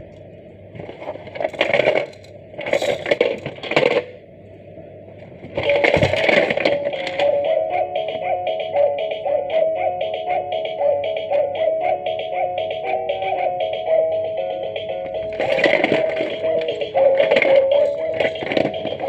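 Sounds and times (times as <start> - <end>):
toy piano key sounds: 5.6 - 9.2, 12.1 - 19.0
tinny electronic melody: 6.8 - 19.0.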